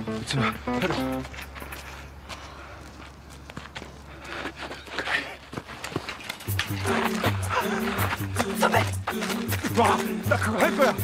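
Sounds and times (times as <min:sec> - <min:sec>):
footsteps on clay court: 0:00.0 - 0:11.0.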